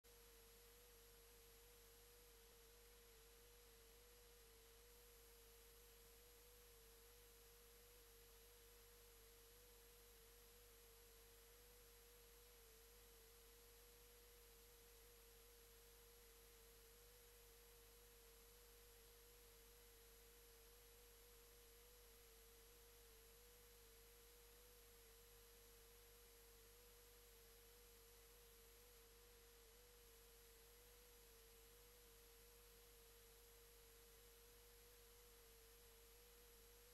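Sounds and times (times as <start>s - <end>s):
low hiss: 0.0s - 36.9s.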